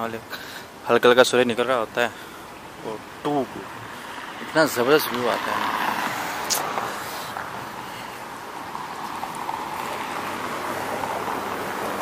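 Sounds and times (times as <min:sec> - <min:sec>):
cars passing on busy street: 0:00.0 - 0:12.0.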